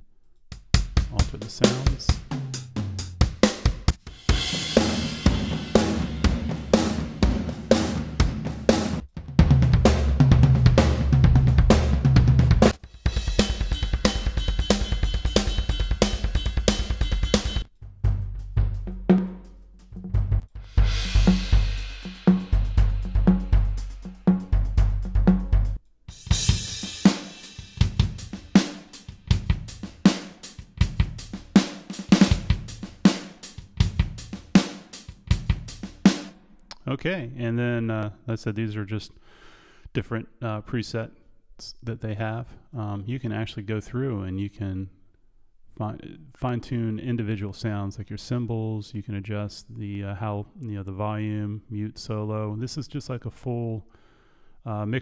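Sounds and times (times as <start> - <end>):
drum kit playing grooves: 0.5 - 36.4
drums played with mallets: 0.6 - 36.2.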